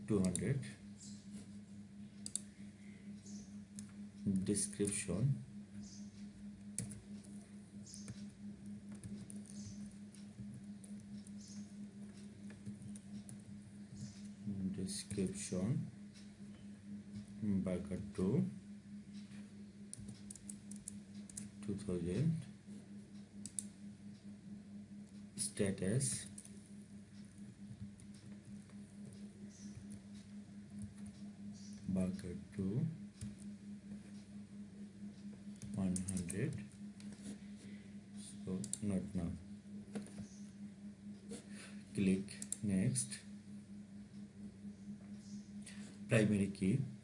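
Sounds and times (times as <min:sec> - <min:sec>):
faint keyboard typing: 0:00.0 - 0:18.5, 0:19.1 - 0:24.3, 0:25.0 - 0:34.4, 0:35.1 - 0:43.2
low electrical hum: 0:00.0 - 0:47.0.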